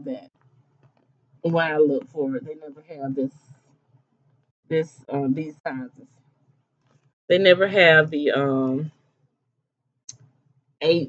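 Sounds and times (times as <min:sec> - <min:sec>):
woman's voice: 0:00.0 - 0:00.2, 0:01.5 - 0:03.3, 0:04.7 - 0:06.0, 0:07.3 - 0:08.9.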